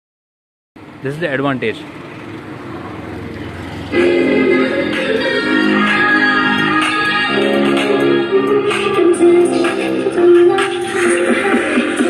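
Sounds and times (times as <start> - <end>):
music with sustained chords: 3.7 - 12.0.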